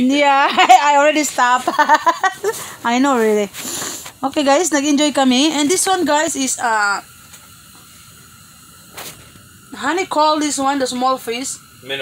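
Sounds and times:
faint steady hiss: 0.0s - 12.0s
light hum: 0.0s - 12.0s.

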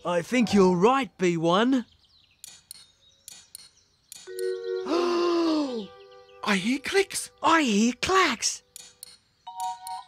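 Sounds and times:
sharp cartoon clicks: 2.4s - 4.5s, 8.7s - 10.0s
held musical chord: 4.3s - 7.5s.

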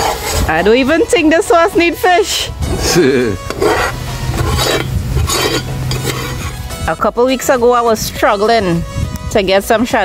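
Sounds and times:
metal spoon scraping pot: 2.8s - 7.0s.

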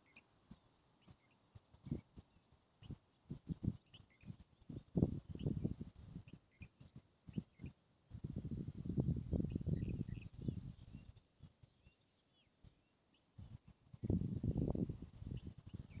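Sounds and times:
wind and handling on microphone: 0.0s - 16.0s.

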